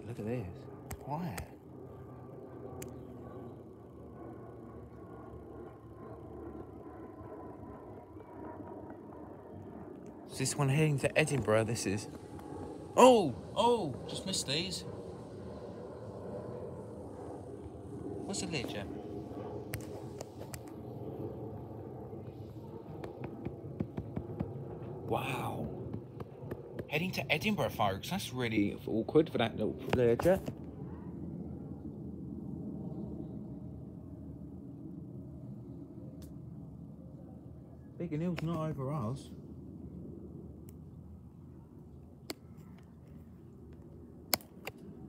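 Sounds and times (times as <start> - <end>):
distant jet engine rumble: 0.0 - 45.0.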